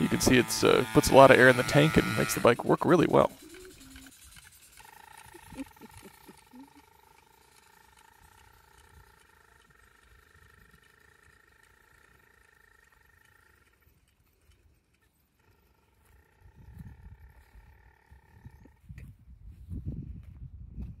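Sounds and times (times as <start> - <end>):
small motor whining: 0.0 - 19.0.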